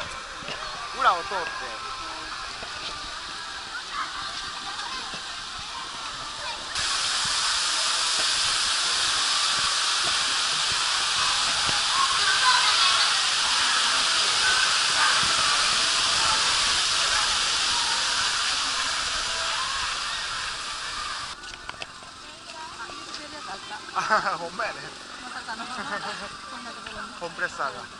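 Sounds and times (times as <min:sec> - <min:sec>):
water pouring into pool: 0:00.2 - 0:27.9.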